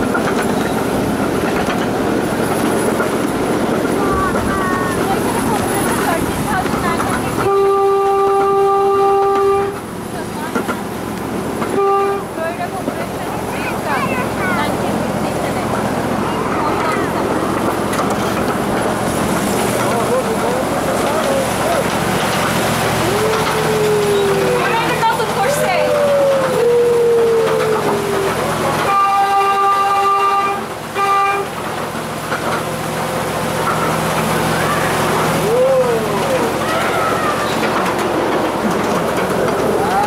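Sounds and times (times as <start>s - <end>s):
ride train running on track: 0.0s - 40.0s
train horn toots: 7.4s - 9.9s, 11.6s - 12.4s, 28.7s - 31.6s
passengers whooping: 19.9s - 30.0s, 34.4s - 38.2s, 39.1s - 40.0s.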